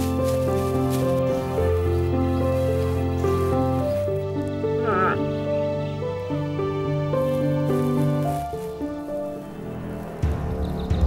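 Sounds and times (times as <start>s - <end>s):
background music sustained notes: 0.0s - 11.0s
bear cub calling: 4.5s - 5.6s.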